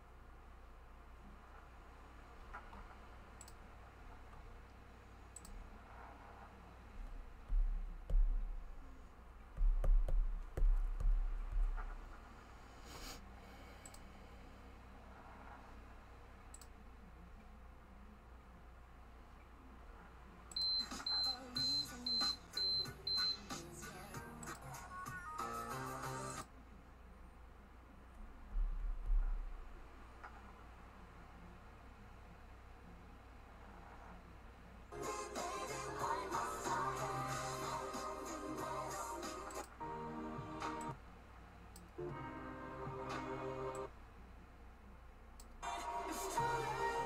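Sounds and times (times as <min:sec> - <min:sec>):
low room hum: 0:00.0 - 0:47.0.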